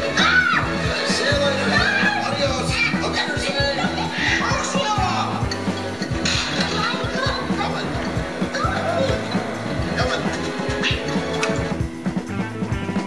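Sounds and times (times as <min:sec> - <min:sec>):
voices from tv speakers: 0:00.0 - 0:11.8
music with steady beat: 0:00.0 - 0:13.0.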